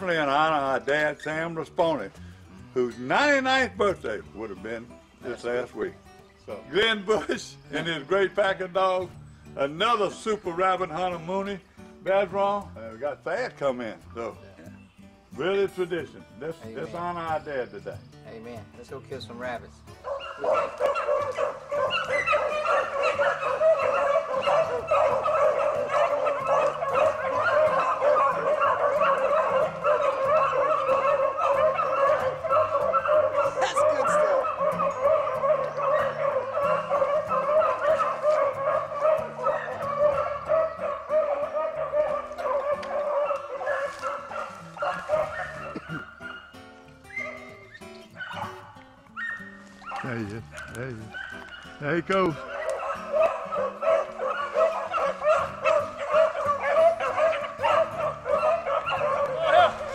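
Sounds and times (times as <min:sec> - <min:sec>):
hounds baying: 0:19.6 - 0:59.9.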